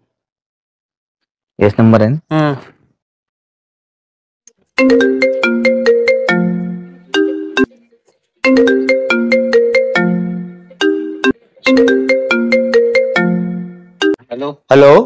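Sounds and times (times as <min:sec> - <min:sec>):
mobile phone ringtone: 0:04.8 - 0:07.8, 0:08.4 - 0:14.2.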